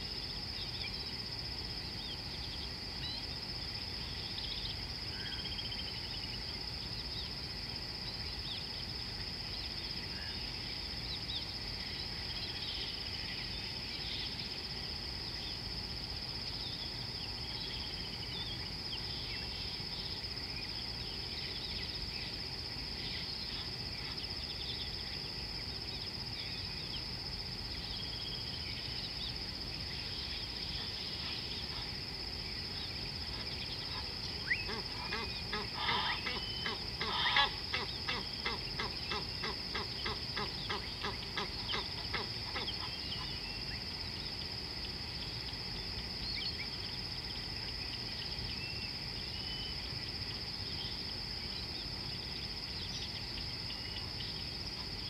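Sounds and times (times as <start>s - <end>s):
high insect drone: 0.0s - 55.0s
bird harsh repeated calls: 34.0s - 43.0s.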